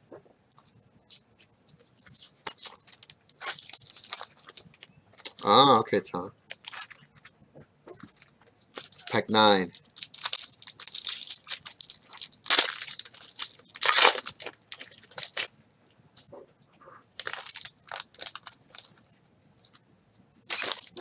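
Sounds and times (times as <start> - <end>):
foil wrapper crinkling and tearing: 0.6 - 5.6, 6.5 - 7.3, 8.0 - 15.5, 17.2 - 19.8, 20.5 - 21.0.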